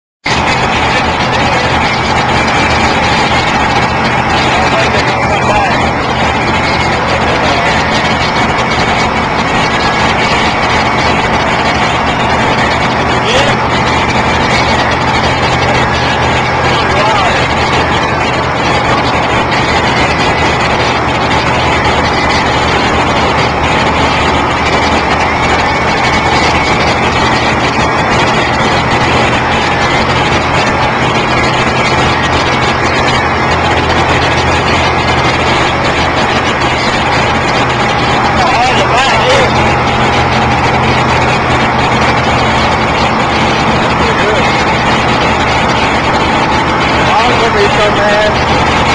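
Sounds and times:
loud motor rumble: 0:00.2 - 0:48.9
rushing noise: 0:00.2 - 0:48.9
indistinct voices: 0:00.3 - 0:48.9.

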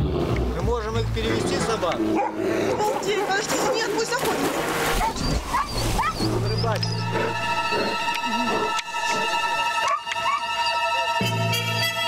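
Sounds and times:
dogs whining and yipping: 0:05.0 - 0:07.8, 0:09.8 - 0:11.1.

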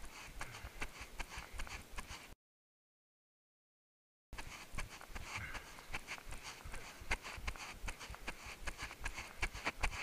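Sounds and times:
running footsteps on grass: 0:00.0 - 0:02.3, 0:04.4 - 0:10.0.

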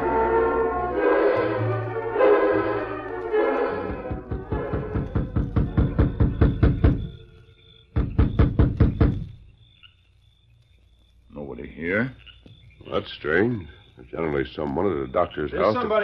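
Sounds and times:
orchestral music: 0:00.0 - 0:06.0
sound-effect hoofbeats: 0:03.8 - 0:07.1
knocking on a door: 0:03.8 - 0:07.2, 0:07.9 - 0:09.4.

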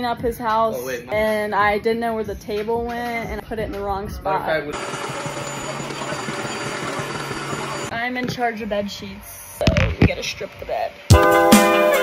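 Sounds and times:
carpet cleaner motor and suction: 0:04.7 - 0:07.9.

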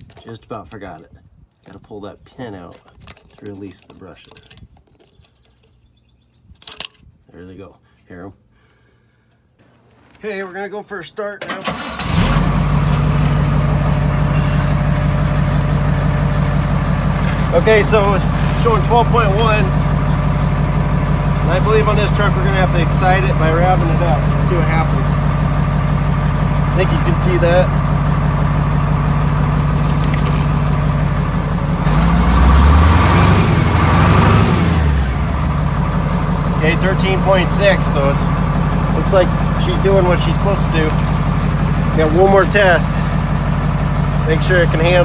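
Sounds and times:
diesel engine starting and idling: 0:11.4 - 0:45.0.

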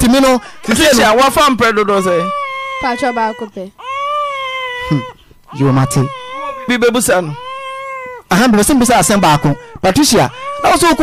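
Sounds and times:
adult voice talking: 0:00.0 - 0:02.5, 0:04.8 - 0:07.5, 0:08.3 - 0:11.0
baby crying: 0:00.3 - 0:11.0.

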